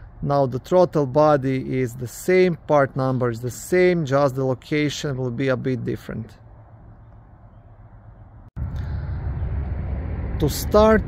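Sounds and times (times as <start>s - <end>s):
outdoor background rumble: 0.0s - 11.0s.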